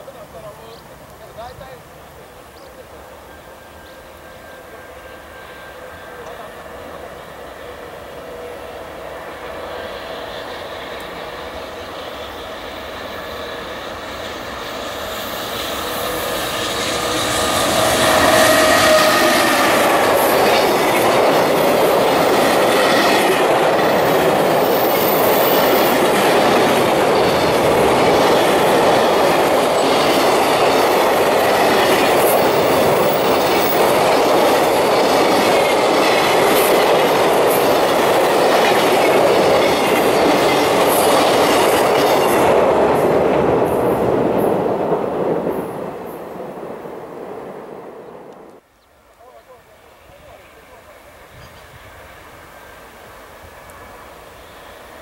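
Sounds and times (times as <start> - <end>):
train wheels rumbling on rail: 2.9 - 48.7.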